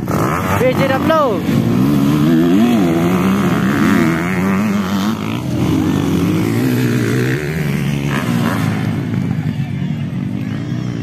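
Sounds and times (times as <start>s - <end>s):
dirt bike engines revving: 0.0s - 11.0s.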